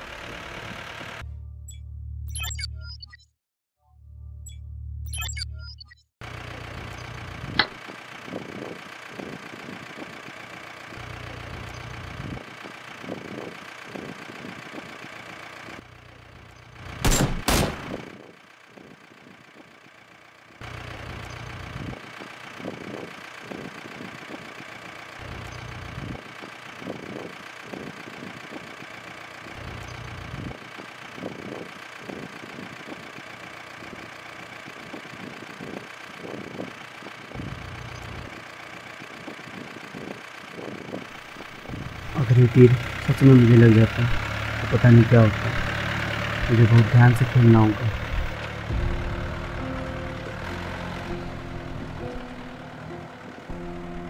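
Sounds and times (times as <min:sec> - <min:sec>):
vehicle engine idling: 0:00.0 - 0:01.6, 0:06.2 - 0:54.0
loud engine burst: 0:17.0 - 0:18.3, 0:41.4 - 0:54.0.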